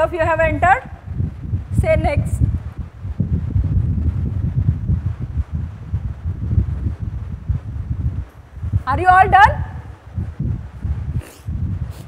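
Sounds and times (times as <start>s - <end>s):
air noise rumble on microphone: 0.0s - 12.0s.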